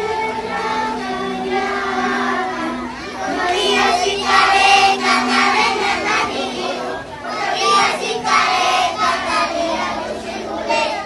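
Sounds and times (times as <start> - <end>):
children singing a carol: 0.0 - 11.0.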